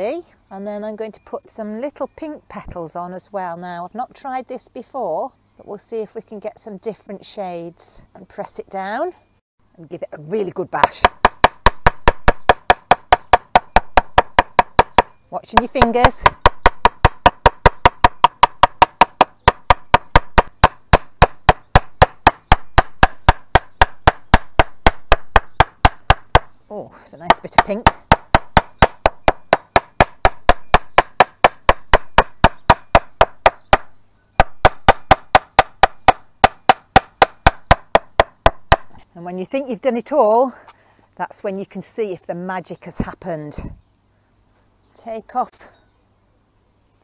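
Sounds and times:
hammer beating cloth on wooden board: 10.9s - 26.6s, 27.5s - 38.9s.

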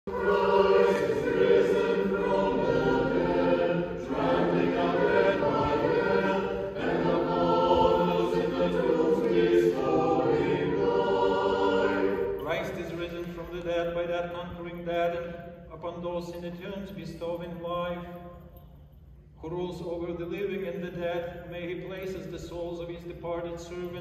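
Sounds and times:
unaccompanied choir chanting: 0.0s - 13.0s.

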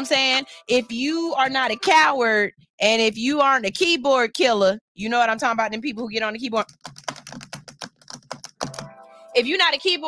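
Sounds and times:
rapid keyboard typing: 6.6s - 9.0s.

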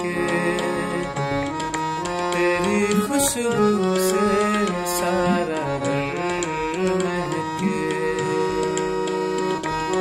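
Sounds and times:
harmonium playing held notes: 0.0s - 10.0s
light ticking beat: 0.0s - 10.0s.

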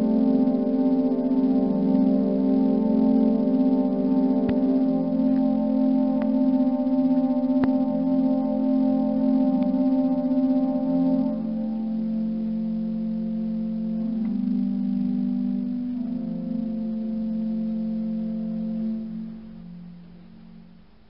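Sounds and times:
pipe organ low chords: 0.0s - 21.0s.

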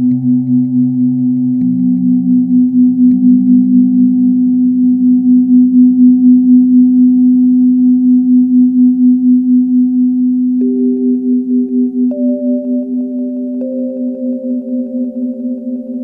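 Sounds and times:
low synth note: 0.0s - 6.4s, 10.6s - 16.0s
synthesizer ambient drone: 0.0s - 16.0s.

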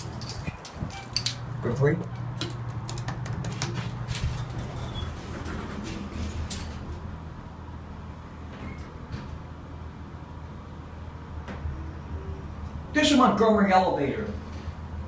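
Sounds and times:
elevator machinery hum: 0.0s - 15.0s
sliding elevator door closing: 3.7s - 7.2s.

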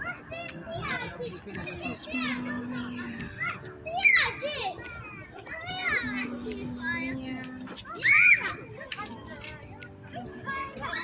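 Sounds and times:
children calling out at play: 0.0s - 11.0s
loud high shout: 7.9s - 8.7s.

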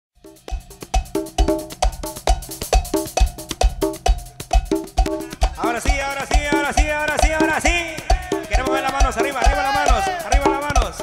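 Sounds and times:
cowbell-like hits: 0.2s - 11.0s
cumbia band playing: 0.2s - 11.0s
kick drum beat: 0.3s - 11.0s.

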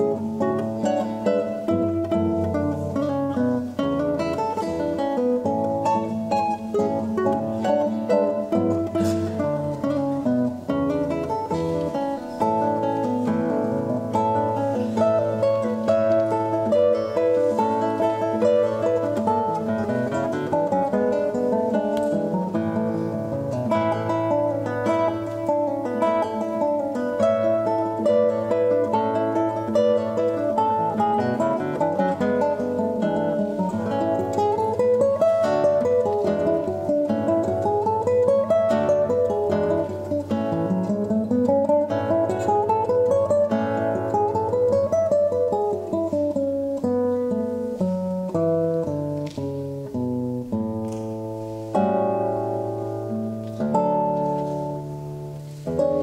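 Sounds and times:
classical guitar duet: 0.0s - 56.0s.

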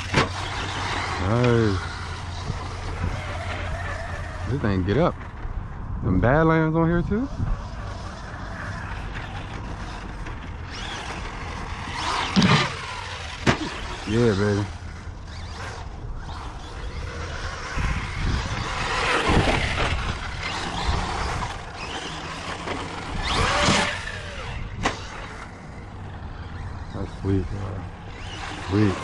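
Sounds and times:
toy truck motor and tyres: 0.0s - 29.0s.

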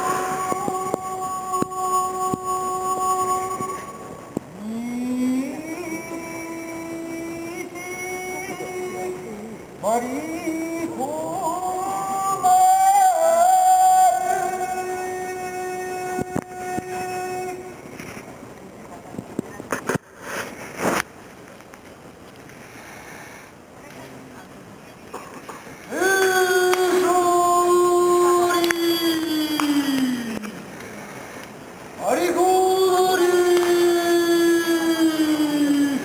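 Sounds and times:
person chanting a high note: 0.0s - 17.9s, 25.9s - 31.3s, 32.0s - 36.0s.

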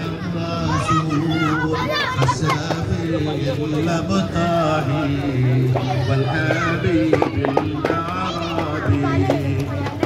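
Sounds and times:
children calling out: 0.0s - 10.0s.

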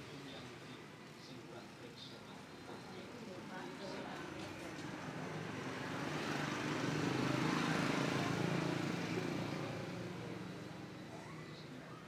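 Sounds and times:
engine passing by: 3.8s - 12.0s.

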